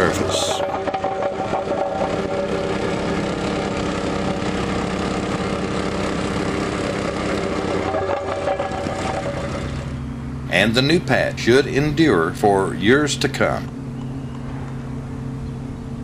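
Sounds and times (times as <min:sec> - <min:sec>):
fast vibrating rattle: 0:00.0 - 0:10.1
plate compactor engine drone: 0:00.0 - 0:16.0.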